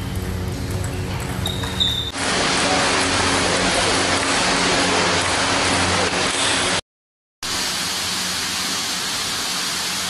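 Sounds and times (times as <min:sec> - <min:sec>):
loud steady rushing noise: 0:02.2 - 0:06.8.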